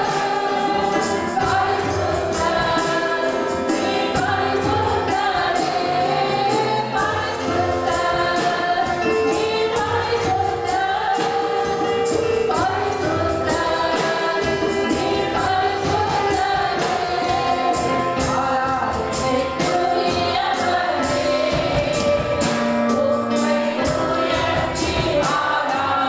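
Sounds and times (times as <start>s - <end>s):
electric keyboard: 0.0s - 26.0s.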